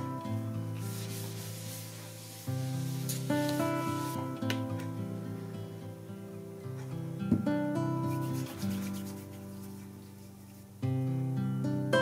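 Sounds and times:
acoustic guitar: 0:00.0 - 0:12.0
hands rubbing together: 0:00.8 - 0:04.2, 0:08.1 - 0:10.7.

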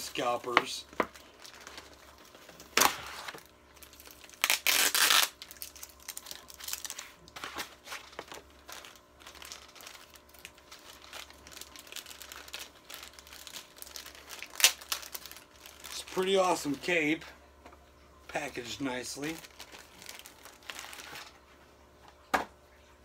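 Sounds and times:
sharp packaging crackle: 0:00.0 - 0:17.2, 0:18.4 - 0:21.4
plastic and paper crinkling: 0:00.0 - 0:17.3, 0:18.4 - 0:21.6.

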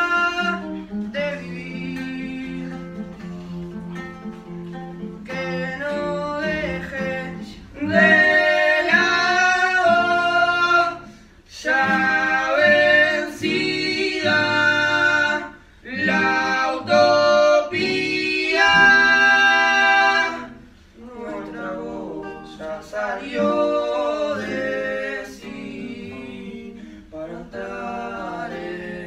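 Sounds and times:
boys singing: 0:00.0 - 0:03.7, 0:05.2 - 0:29.0
acoustic guitar: 0:00.0 - 0:29.0.

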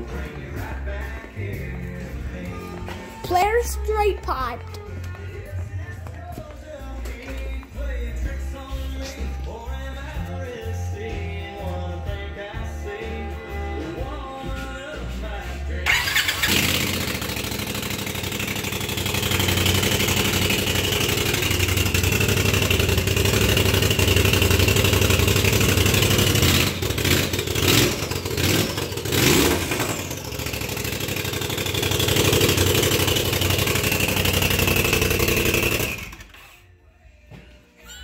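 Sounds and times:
engine starting and running: 0:13.9 - 0:36.8.

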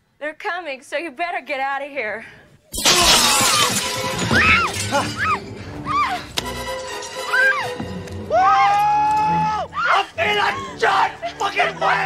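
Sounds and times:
falling glass fragments: 0:02.7 - 0:05.8, 0:06.5 - 0:07.7
glass shattering: 0:02.7 - 0:07.8
film music: 0:04.3 - 0:12.0
woman screaming: 0:04.4 - 0:06.3, 0:07.3 - 0:11.4.

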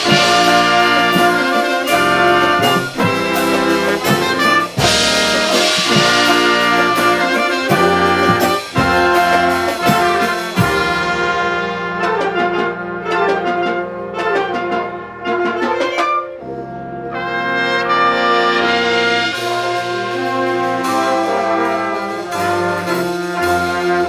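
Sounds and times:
wind band playing: 0:00.0 - 0:24.0.

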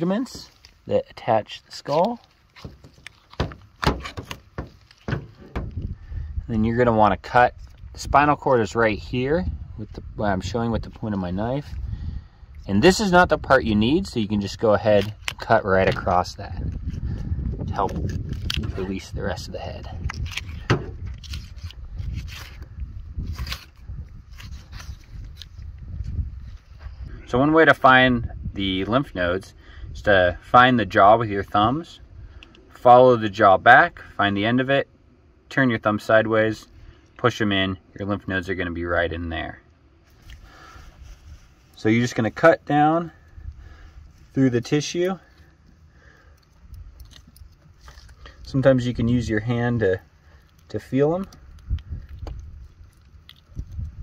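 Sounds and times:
low steady rumble: 0:00.0 - 0:54.0
low rumble: 0:05.2 - 0:14.7.

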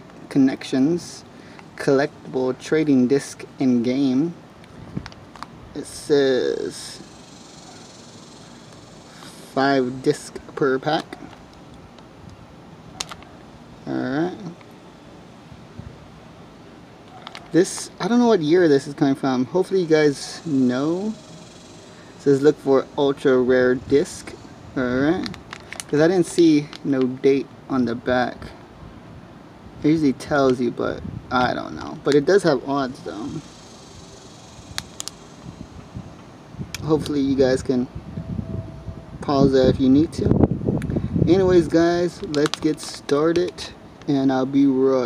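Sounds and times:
steady background hum: 0:00.0 - 0:45.0
plastic wrapper crackling: 0:25.2 - 0:27.0, 0:42.2 - 0:43.7
foil pack sharp click: 0:25.2 - 0:27.1, 0:42.2 - 0:43.6.

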